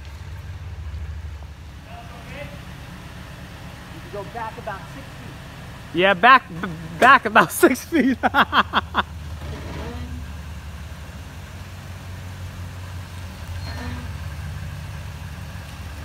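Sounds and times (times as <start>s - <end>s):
truck engine idling: 0.0s - 16.0s.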